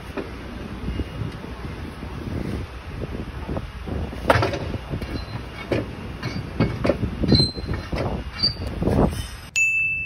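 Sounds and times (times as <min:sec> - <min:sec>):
rough scraping and rumbling: 0:01.8 - 0:09.5
faint high squeaks: 0:07.3 - 0:09.4
bright ding chime: 0:09.6 - 0:10.0.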